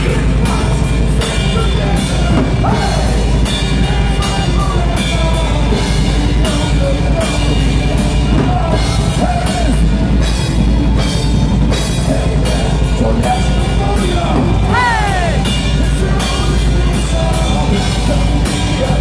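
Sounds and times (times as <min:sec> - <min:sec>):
distorted electric guitars: 0:00.0 - 0:19.0
drum kit: 0:00.0 - 0:19.0.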